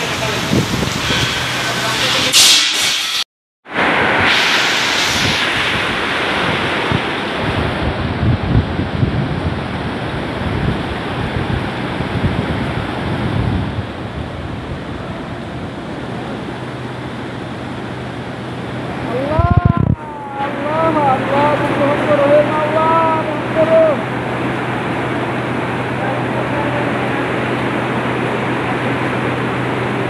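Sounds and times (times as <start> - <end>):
wind buffeting microphone: 0.0 - 1.5, 5.1 - 26.0.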